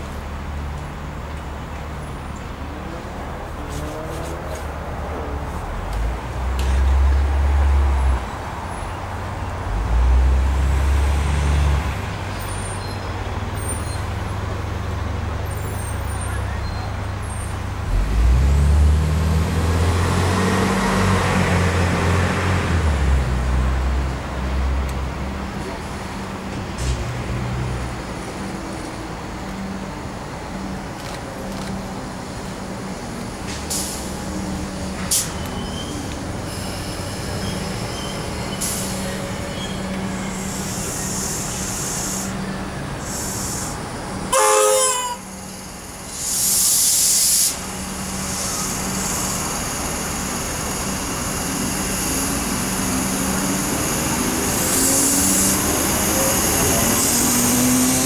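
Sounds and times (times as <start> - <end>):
electric train low hum: 21.0 - 58.0.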